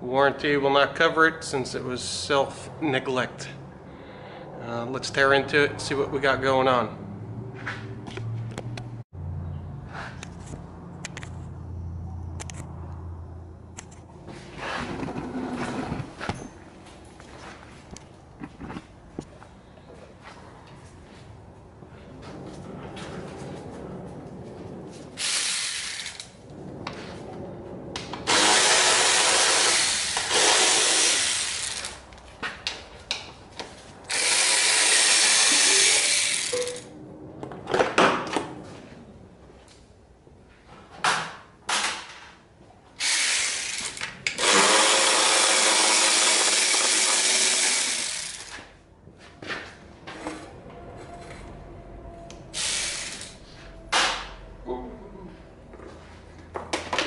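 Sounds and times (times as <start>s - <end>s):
handheld power tool running: 25.2s - 26.3s, 28.3s - 32.0s, 34.1s - 36.8s, 43.0s - 48.6s, 52.6s - 53.4s.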